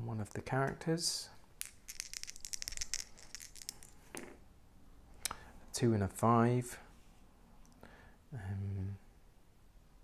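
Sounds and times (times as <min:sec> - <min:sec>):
dice clicking on playmat: 0:01.6 - 0:04.4.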